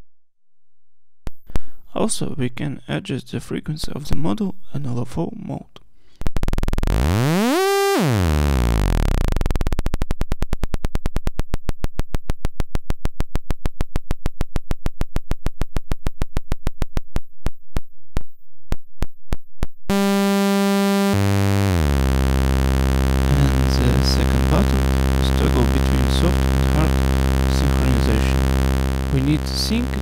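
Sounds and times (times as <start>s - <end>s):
synthesizer oscillator clicks: 6.3s - 18.3s, 19.9s - 30.0s
buzzy synthesizer drone: 6.5s - 9.9s, 19.9s - 30.0s.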